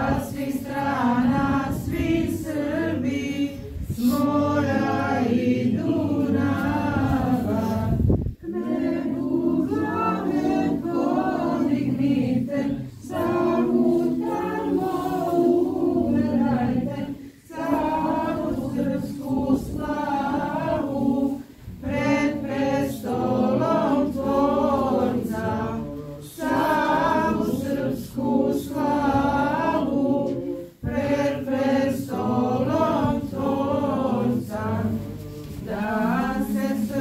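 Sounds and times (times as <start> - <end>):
group singing a hymn: 0.0 - 37.0
unaccompanied choir chanting: 0.0 - 37.0.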